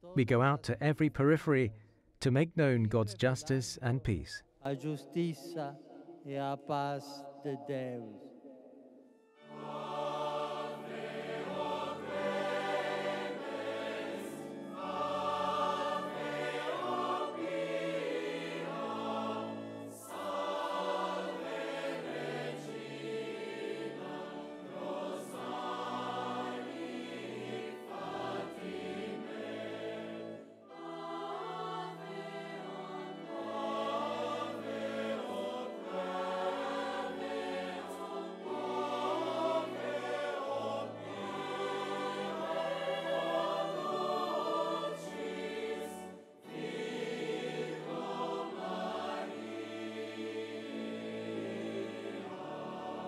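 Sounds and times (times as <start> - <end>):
choir singing a slow hymn: 9.4 - 53.0.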